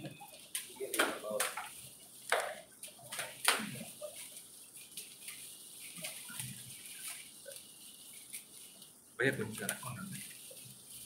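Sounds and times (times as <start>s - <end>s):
wrapping paper rustling and crinkling: 0.0s - 11.0s.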